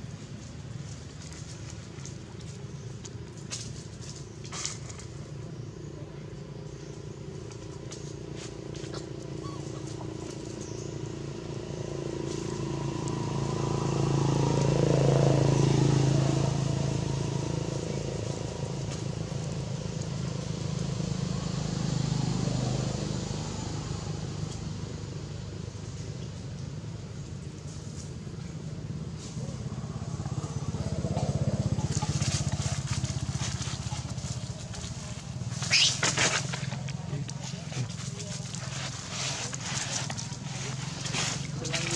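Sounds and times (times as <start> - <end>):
passing motor vehicles: 0.0 - 41.9.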